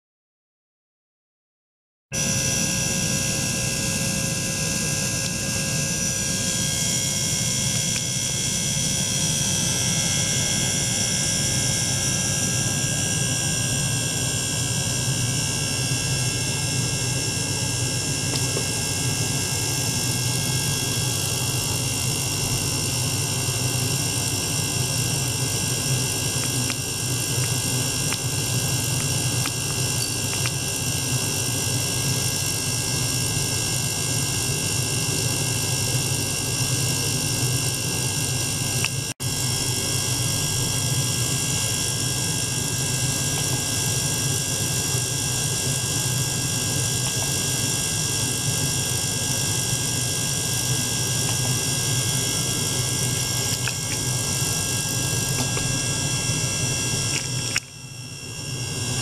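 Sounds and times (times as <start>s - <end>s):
ultrasonic cleaner humming: 2.2s - 59.0s.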